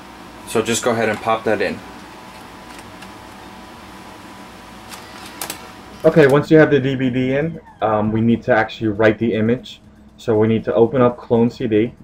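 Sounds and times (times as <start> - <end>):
steady low hum: 0.0 - 12.0
optical drive clicks: 2.3 - 3.4, 4.8 - 6.4.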